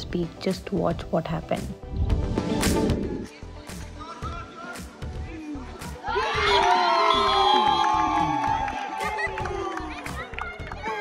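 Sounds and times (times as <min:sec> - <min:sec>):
crowd cheering and shouting: 0:04.0 - 0:11.0.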